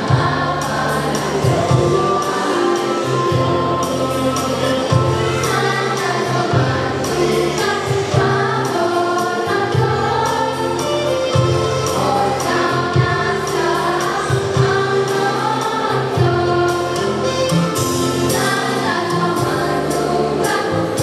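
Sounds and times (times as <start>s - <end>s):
girls' choir singing: 0.0s - 21.0s
instrumental backing: 0.0s - 21.0s.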